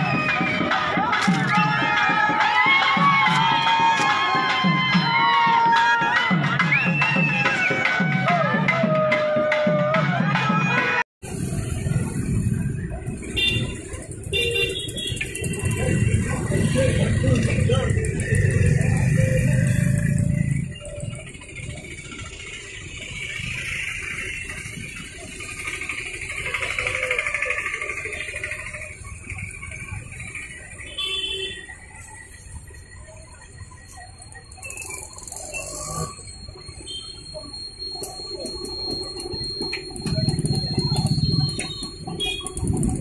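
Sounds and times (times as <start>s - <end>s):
auto-rickshaw and motorbike engines: 0.0s - 5.5s, 10.6s - 43.0s.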